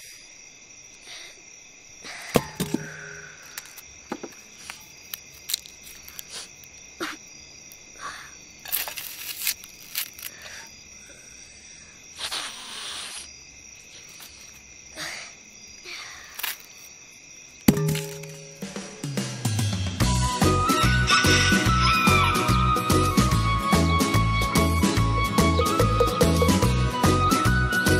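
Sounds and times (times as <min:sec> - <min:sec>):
boy sniffling and sobbing: 0:07.9 - 0:08.5, 0:10.3 - 0:13.3, 0:14.9 - 0:16.4.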